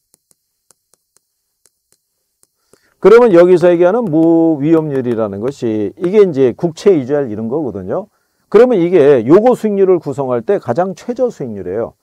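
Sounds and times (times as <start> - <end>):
chalk tapping and scratching: 0.0 - 6.9.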